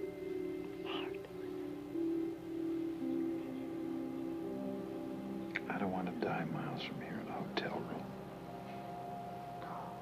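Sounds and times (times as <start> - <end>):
soft background music: 0.0 - 10.0
person whispering: 0.8 - 1.6, 5.6 - 8.1.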